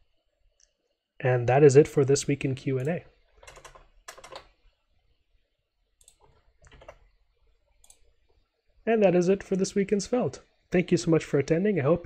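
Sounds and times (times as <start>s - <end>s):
keyboard keystrokes and clicks: 2.8s - 4.6s, 6.0s - 7.1s.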